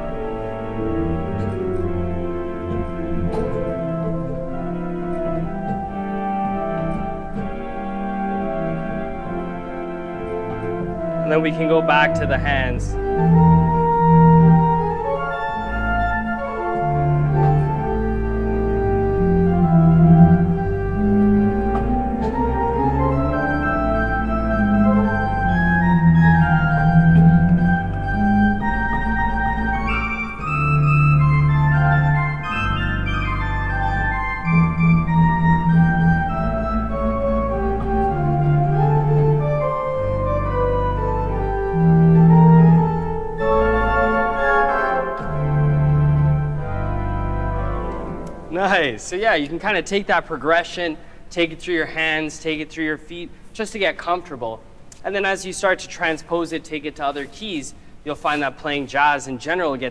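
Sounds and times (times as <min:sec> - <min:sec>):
pipe organ jazz improvisation: 0:00.0 - 0:59.9.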